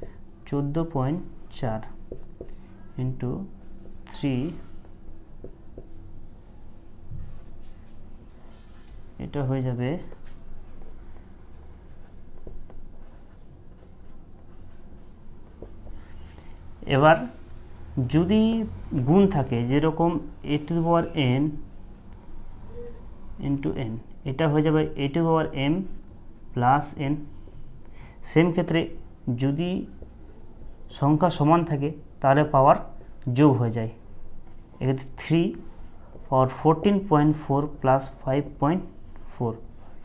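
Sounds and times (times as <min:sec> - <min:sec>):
marker pen scratching: 0:01.8 - 0:02.6, 0:03.6 - 0:06.0, 0:10.0 - 0:16.5, 0:39.1 - 0:40.0.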